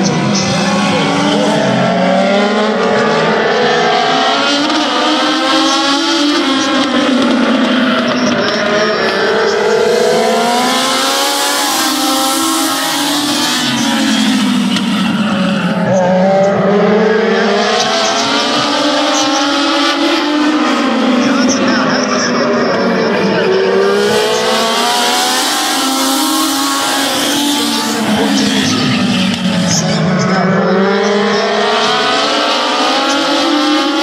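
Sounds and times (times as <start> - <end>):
race car engines: 0.0 - 34.0.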